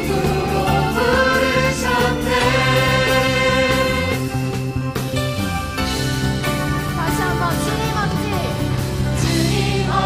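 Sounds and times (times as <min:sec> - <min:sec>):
group singing praise song: 0:00.0 - 0:04.3, 0:09.2 - 0:10.0
live worship band: 0:00.0 - 0:10.0.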